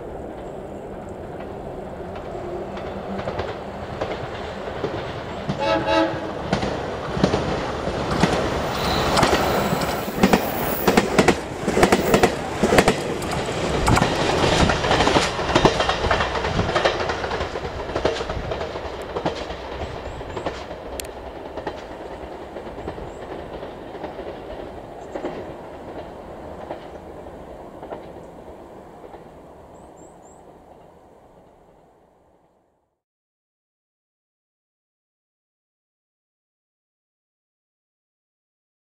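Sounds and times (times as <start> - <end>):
diesel train engines: 0.0 - 32.4
train wheels clattering over rail joints: 0.3 - 5.7, 6.3 - 28.4.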